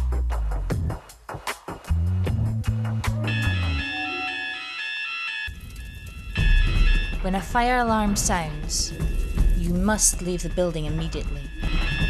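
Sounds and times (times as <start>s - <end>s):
fire alarm two-tone sounder: 3.2s - 7.9s.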